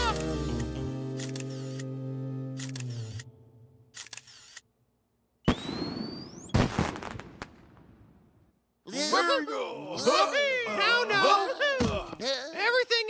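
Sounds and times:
held music chord: 0.0 - 3.8
camera shutter clicks: 0.1 - 1.9, 2.6 - 3.3, 3.9 - 4.7
burst with rising whistle: 5.4 - 6.6.

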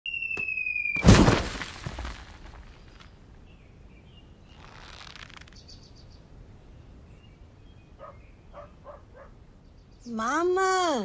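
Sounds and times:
faint bird chirps: 2.7 - 10.9.

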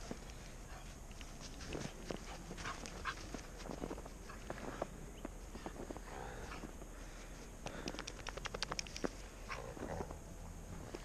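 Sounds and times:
paws crunching in snow: 0.0 - 7.5.

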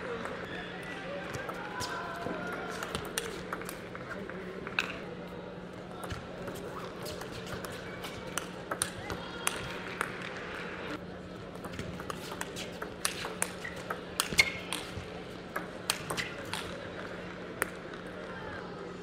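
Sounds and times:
murmur of voices: 0.0 - 19.0
table tennis ball clicking: 7.1 - 10.2, 11.6 - 16.7.

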